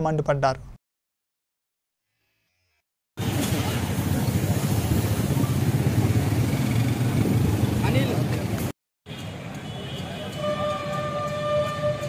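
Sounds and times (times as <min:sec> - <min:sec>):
street noise: 0:03.2 - 0:12.0
vehicle horn steady note: 0:09.6 - 0:12.0.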